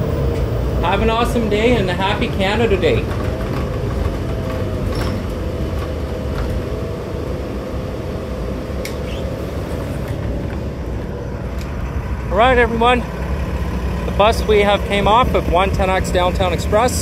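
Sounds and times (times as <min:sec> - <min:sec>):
bus diesel engine running: 0:00.0 - 0:17.0.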